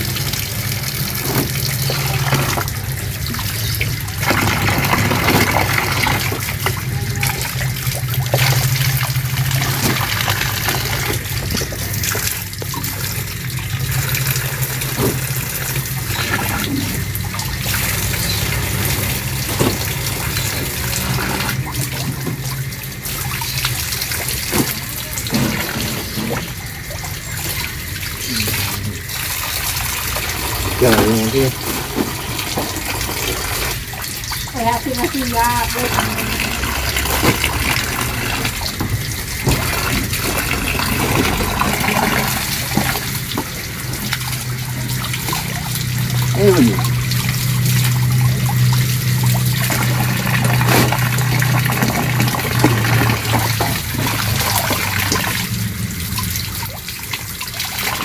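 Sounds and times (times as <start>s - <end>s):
tap water splashing into basin: 0.0s - 58.0s.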